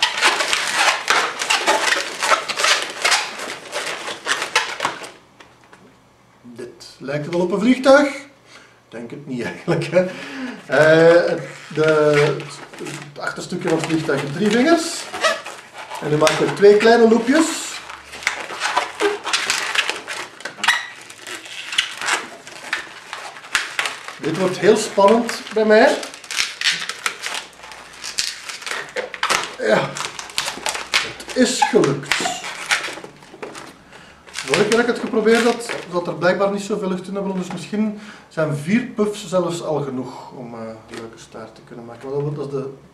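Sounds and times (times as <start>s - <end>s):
balloons squeaking and rubbing: 0.0s - 5.2s, 9.4s - 37.6s.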